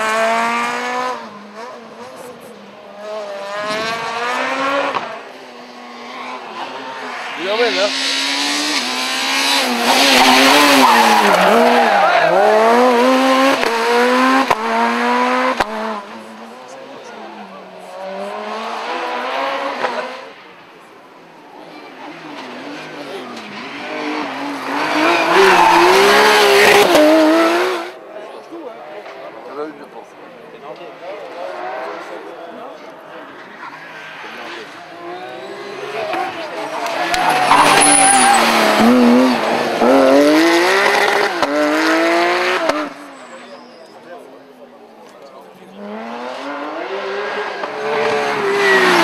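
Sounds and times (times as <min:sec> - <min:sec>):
rally car engine accelerating: 0:00.0 - 0:16.7, 0:17.4 - 0:20.4, 0:22.0 - 0:28.0, 0:33.2 - 0:43.4, 0:45.6 - 0:49.0
another rally car engine: 0:00.0 - 0:44.4, 0:45.2 - 0:49.0
rally car engine approaching: 0:30.9 - 0:43.8.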